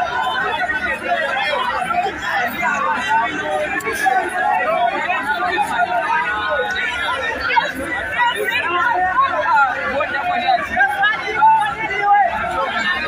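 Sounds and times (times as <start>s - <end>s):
crowd of students babbling: 0.0s - 13.0s.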